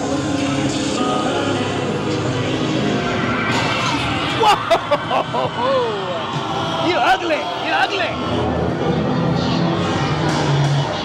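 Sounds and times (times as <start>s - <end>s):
droning synth soundtrack: 0.0s - 11.0s.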